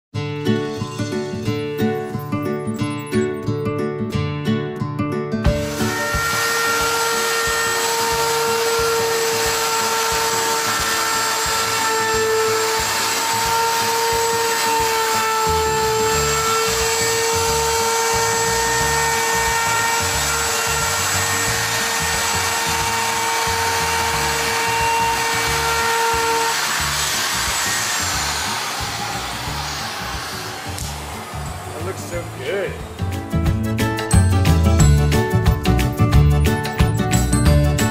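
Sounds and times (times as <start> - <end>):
router high whine: 5.5 - 33.0.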